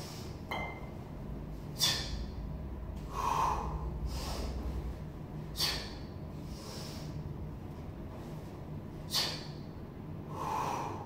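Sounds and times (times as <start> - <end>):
forceful breathing under exertion: 3.0 - 7.3, 9.0 - 11.0.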